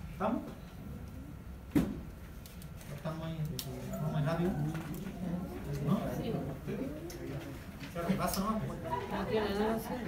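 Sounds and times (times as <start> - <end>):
murmur of voices: 2.9 - 10.0.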